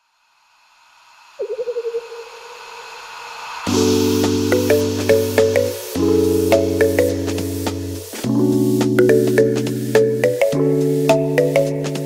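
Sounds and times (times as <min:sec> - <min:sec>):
hiss: 0:00.0 - 0:08.7.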